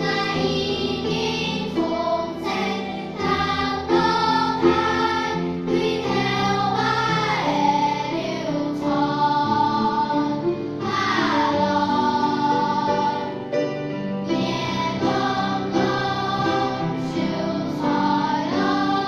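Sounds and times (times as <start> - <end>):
children's choir singing: 0.0 - 19.0.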